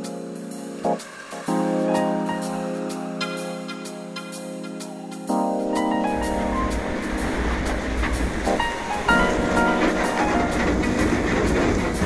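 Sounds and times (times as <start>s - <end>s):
keyboard music: 0.0s - 12.0s
ship hull crunching through ice: 6.3s - 12.0s.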